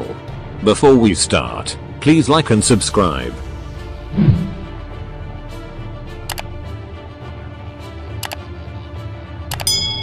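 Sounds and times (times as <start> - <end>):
background music with bass: 0.0 - 10.0
notification bell chime: 9.6 - 10.0.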